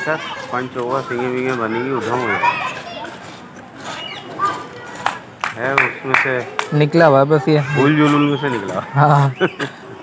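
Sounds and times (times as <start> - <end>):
children and people calling out: 0.0 - 10.0.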